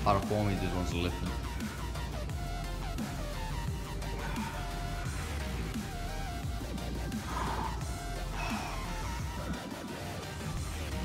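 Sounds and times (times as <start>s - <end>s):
electronic dance music: 0.0s - 11.0s
breathy puffs: 4.0s - 10.2s.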